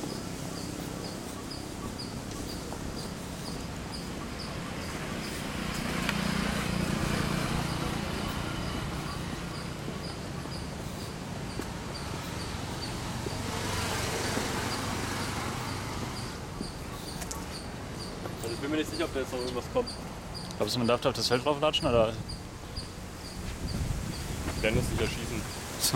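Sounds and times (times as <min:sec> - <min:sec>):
high insect chirp: 0:00.0 - 0:25.9
traffic passing on road: 0:00.0 - 0:25.9.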